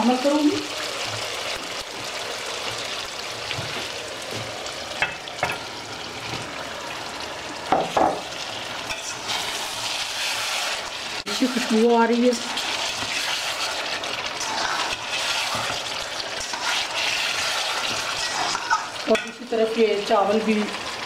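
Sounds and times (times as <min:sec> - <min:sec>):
spices sizzling in hot oil: 0:00.0 - 0:21.0.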